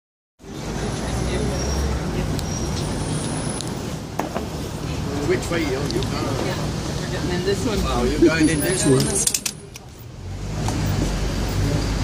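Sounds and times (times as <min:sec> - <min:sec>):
crowd of people talking: 0:00.4 - 0:12.0
street traffic noise: 0:00.4 - 0:12.0.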